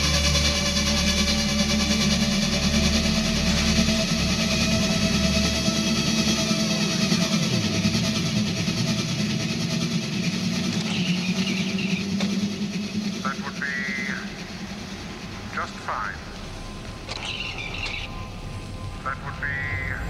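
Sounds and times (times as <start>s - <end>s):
low pulsing bass: 0.0s - 19.3s
mechanical electronic drone: 0.0s - 20.0s.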